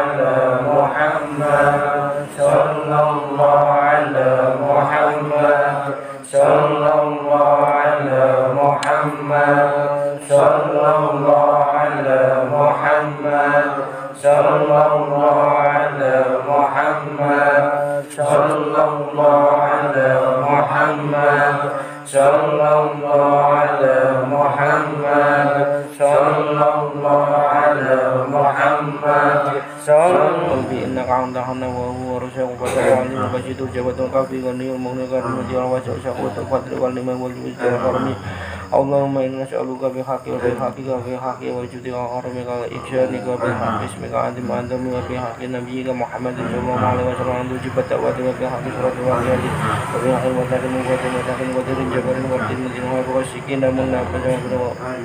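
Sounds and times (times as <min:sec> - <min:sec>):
men chanting in unison: 0:00.0 - 0:55.0.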